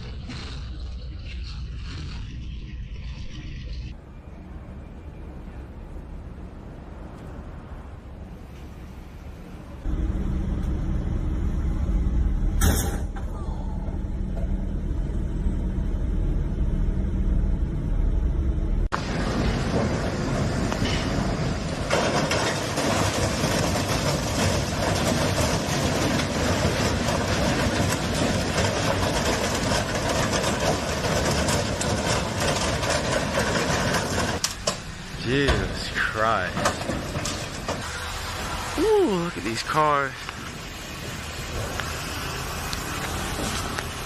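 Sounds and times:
low vehicle engine rumble: 0.0s - 44.0s
freight train rolling past: 13.7s - 44.0s.

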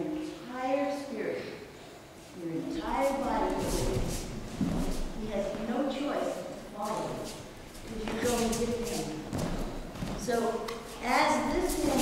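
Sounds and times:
person speaking: 2.4s - 12.0s
bare feet shuffling on mat: 2.8s - 5.8s, 6.7s - 12.0s.

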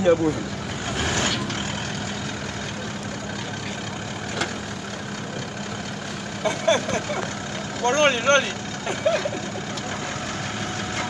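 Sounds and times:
engine idling: 0.0s - 11.0s.

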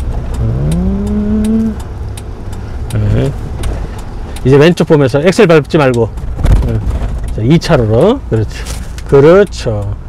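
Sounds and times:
truck engine drone: 0.0s - 5.5s
road noise inside cab: 0.0s - 10.0s
turn signal ticking: 0.0s - 10.0s.

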